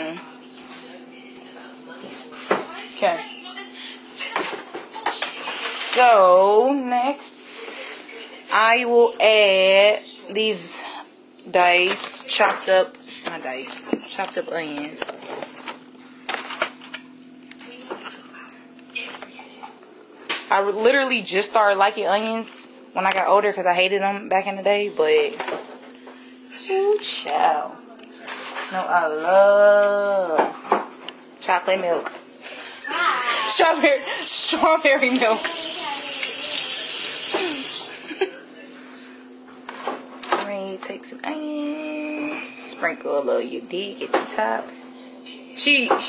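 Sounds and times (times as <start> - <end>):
faucet water running into sink: 34.0 - 38.0.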